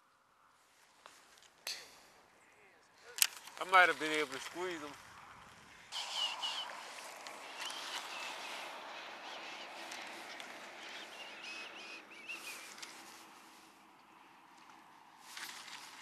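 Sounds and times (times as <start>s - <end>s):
birds chirping: 1.7s - 14.3s.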